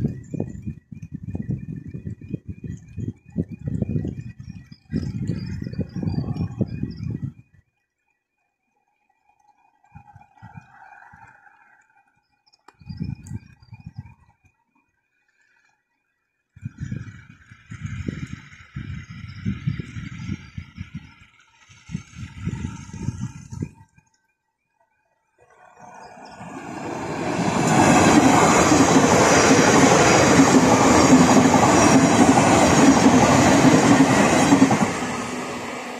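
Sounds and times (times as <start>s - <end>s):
wind rumbling on microphone: 0.0s - 7.6s, 9.8s - 11.8s, 12.7s - 14.6s, 16.6s - 24.1s, 25.7s - 35.9s
train wheels on rails: 16.9s - 23.8s, 25.5s - 35.9s.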